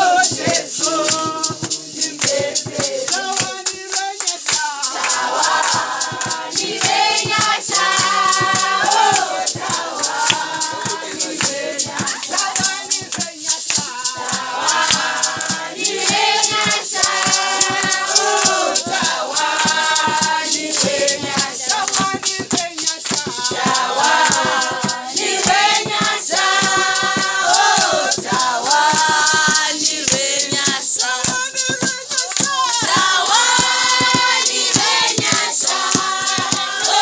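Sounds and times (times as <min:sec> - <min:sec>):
group of voices singing: 0:00.0 - 0:37.0
hand claps: 0:00.0 - 0:37.0
shaker rattle: 0:00.0 - 0:37.0.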